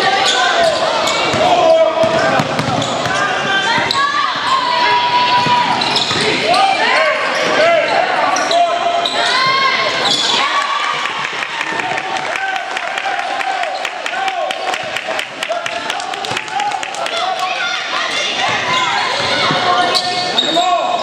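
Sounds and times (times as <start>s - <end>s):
sneakers squeaking: 0.0s - 10.6s, 18.1s - 21.0s
people shouting: 0.0s - 14.5s
basketball bouncing: 1.3s - 4.0s.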